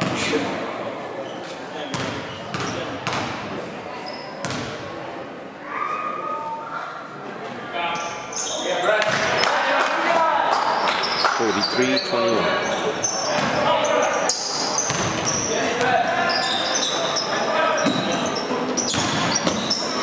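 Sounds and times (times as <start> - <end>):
basketball bouncing on hardwood floor: 1.9 - 3.3.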